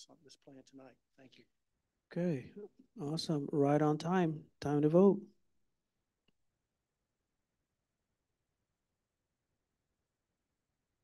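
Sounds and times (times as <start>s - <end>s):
man speaking: 2.1s - 5.3s.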